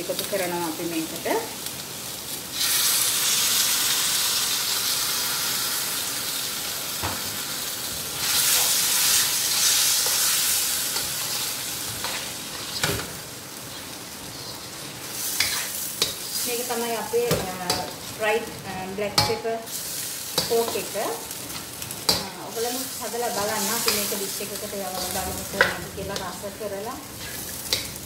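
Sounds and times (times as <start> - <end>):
food sizzling in a wok: 0.0 - 28.0.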